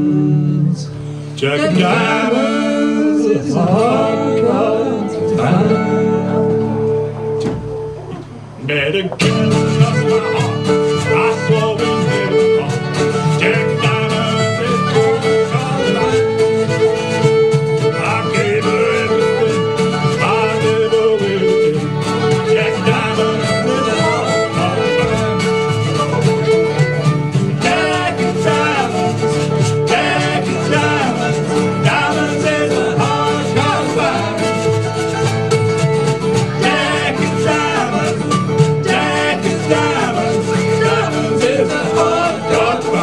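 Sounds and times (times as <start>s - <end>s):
banjo: 0.0s - 43.0s
bass: 0.0s - 43.0s
fiddle melody: 0.0s - 43.0s
mandolin: 0.0s - 43.0s
strummed acoustic guitar: 0.0s - 43.0s.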